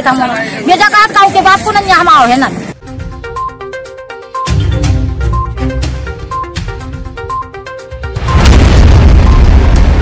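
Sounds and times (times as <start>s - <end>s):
music jingle: 2.8s - 10.0s
loud boom with deep rumble: 8.2s - 10.0s.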